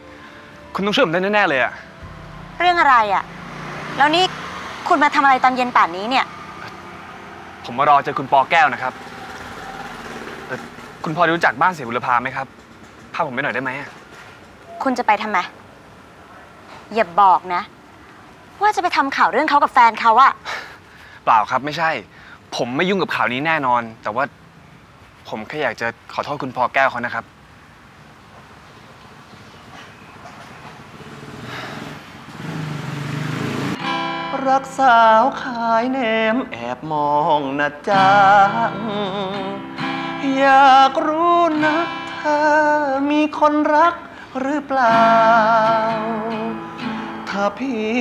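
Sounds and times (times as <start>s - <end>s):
street background noise: 0.0s - 48.0s
vehicle engine idling: 1.4s - 14.1s.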